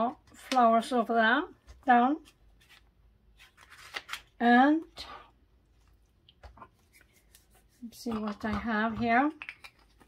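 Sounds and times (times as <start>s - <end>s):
paper rustle: 2.2s - 4.3s.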